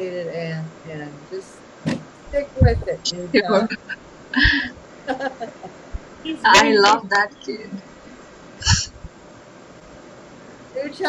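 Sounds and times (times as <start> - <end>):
person chuckling: 3.4 - 5.8, 8.6 - 9.0.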